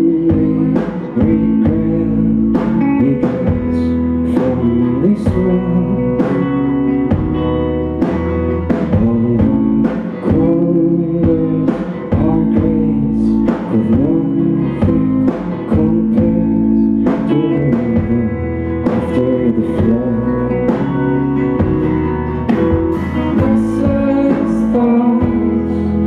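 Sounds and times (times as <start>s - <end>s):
rock band playing live: 0.0s - 26.0s
voices singing: 8.6s - 26.0s.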